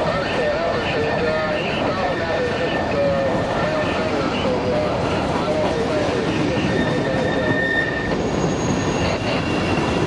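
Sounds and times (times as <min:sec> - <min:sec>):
train wheels rumbling on rail: 0:00.0 - 0:10.0
wavering wheel squeal: 0:06.5 - 0:10.0.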